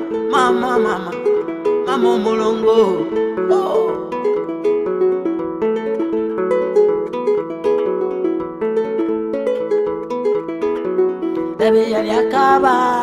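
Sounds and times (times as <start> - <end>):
plucked harp melody: 0.0 - 13.0.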